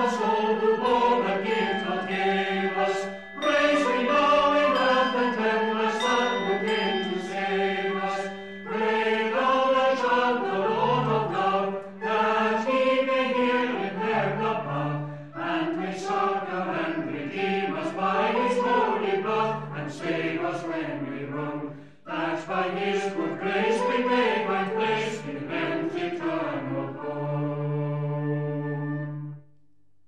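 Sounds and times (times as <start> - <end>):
slow choral chanting: 0.0 - 29.2.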